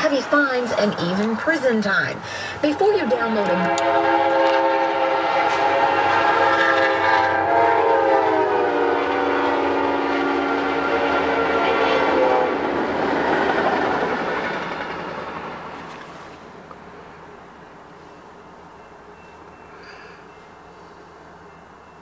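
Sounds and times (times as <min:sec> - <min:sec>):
train rumble: 0:00.0 - 0:22.0
train air horn: 0:03.4 - 0:12.9.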